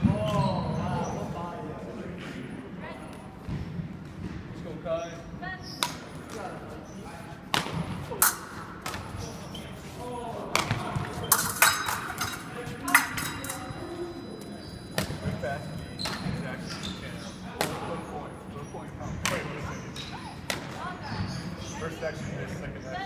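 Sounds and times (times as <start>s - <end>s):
fencing blades clinking: 8.2s - 9.3s, 11.2s - 16.9s.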